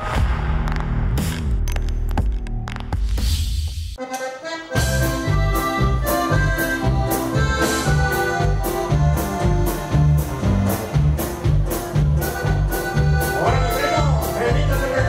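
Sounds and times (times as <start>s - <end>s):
button accordion: 4.0s - 15.0s
live band playing: 4.0s - 15.0s.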